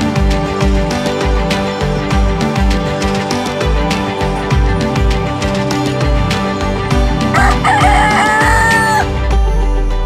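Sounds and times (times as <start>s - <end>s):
music with steady beat: 0.0s - 10.0s
rooster crowing: 7.3s - 9.1s.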